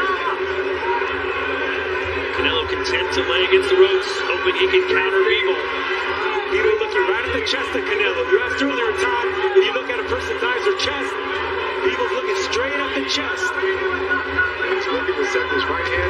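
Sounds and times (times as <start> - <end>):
crowd shouting and cheering: 0.0 - 16.0.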